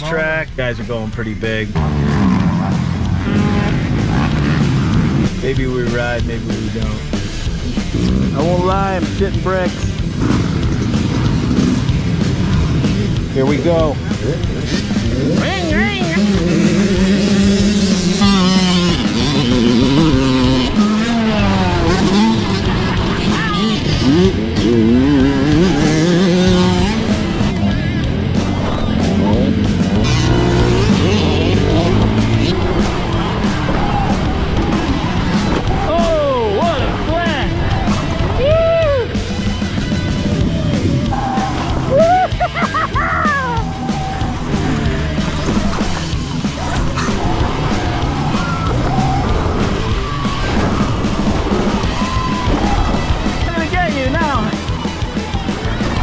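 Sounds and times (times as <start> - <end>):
motocross bike engines: 0.0 - 56.0
music playing: 0.0 - 56.0.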